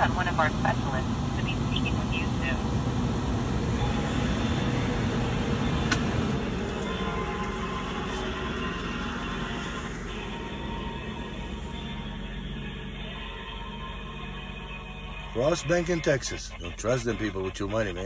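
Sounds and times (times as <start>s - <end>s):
road noise: 0.0s - 18.0s
truck engine rumble: 0.0s - 18.0s.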